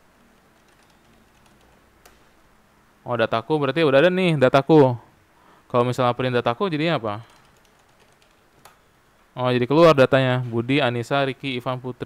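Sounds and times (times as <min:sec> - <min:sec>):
computer keyboard typing: 0:00.5 - 0:02.2, 0:07.2 - 0:08.8.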